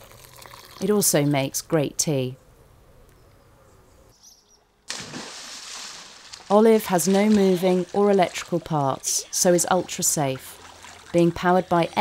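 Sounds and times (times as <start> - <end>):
bubbling churning water: 7.7 - 12.0.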